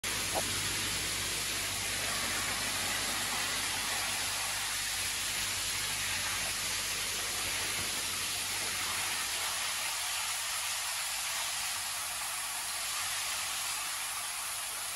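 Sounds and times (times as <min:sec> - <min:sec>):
water hissing in a tank: 0:00.0 - 0:14.9.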